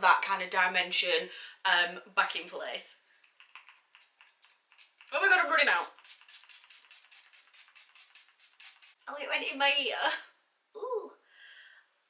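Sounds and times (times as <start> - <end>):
spray bottle pump hissing: 3.2 - 9.0.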